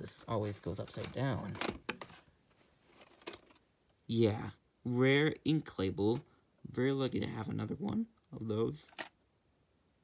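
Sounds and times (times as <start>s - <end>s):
plastic cassette handling: 0.9s - 2.3s, 2.9s - 3.7s, 8.9s - 9.2s.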